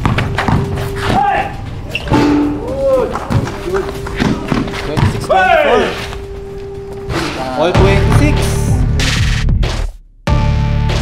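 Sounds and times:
basketball bouncing on court: 0.0 - 1.2, 3.1 - 5.3
steady background tone: 0.0 - 10.0
people shouting: 1.0 - 4.5, 5.2 - 6.1.

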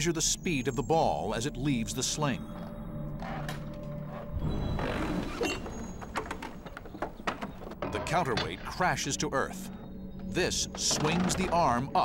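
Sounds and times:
background music: 0.0 - 12.0
wooden knocks and rattles: 3.4 - 12.0.

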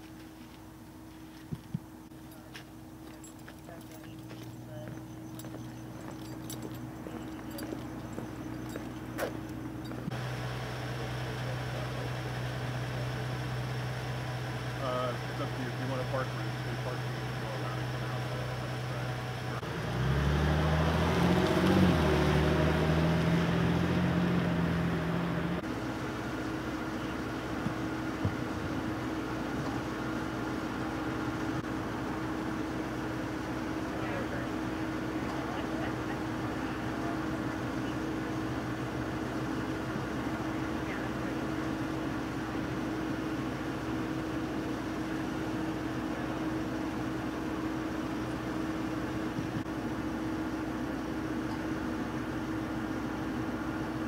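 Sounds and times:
hard shoes stepping on concrete: 0.0 - 10.1
steady hum with constant tone: 0.0 - 19.6
steady low hum: 0.0 - 20.2, 22.3 - 54.0
van engine driving past: 4.6 - 49.6.

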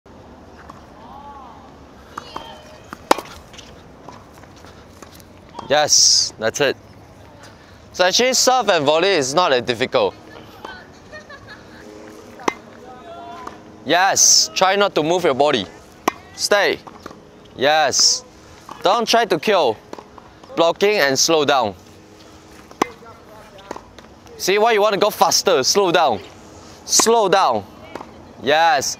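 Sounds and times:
tennis racquet hitting ball: 2.1 - 4.3, 11.8 - 13.8, 15.9 - 17.2, 22.2 - 24.1.

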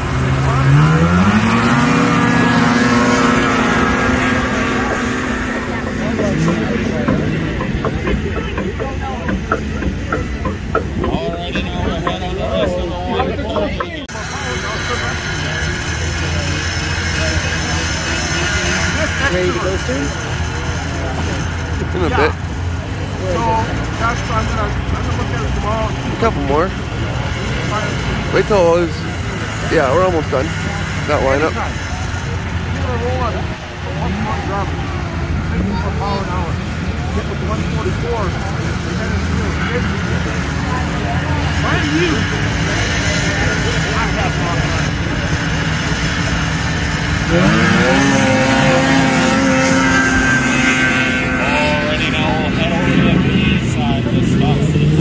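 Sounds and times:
people talking: 0.0 - 55.0
snowmobile engines running: 0.0 - 55.0.

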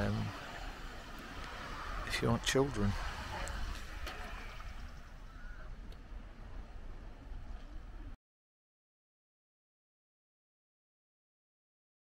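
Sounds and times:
low rumble: 0.0 - 8.2.

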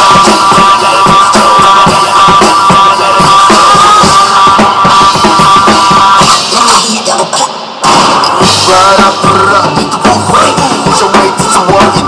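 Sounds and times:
drum kit: 0.0 - 12.0
rock instrumental with high chords: 0.0 - 12.0.

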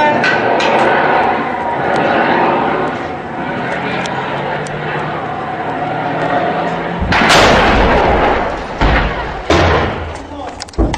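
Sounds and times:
sharp bang: 6.7 - 10.9
heavy weapon blast: 7.0 - 10.2.

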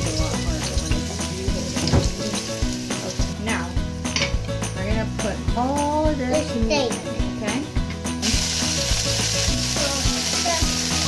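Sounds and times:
meat sizzling in a wok: 0.0 - 4.2, 8.0 - 11.0.

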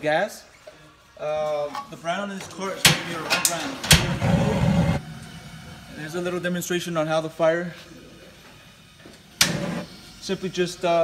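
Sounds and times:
gas burner igniting: 2.8 - 11.0.

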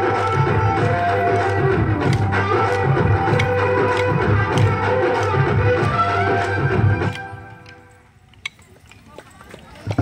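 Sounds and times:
wooden sticks clicking together: 1.3 - 5.4, 7.0 - 9.1
faint crowd voices: 5.2 - 10.0.

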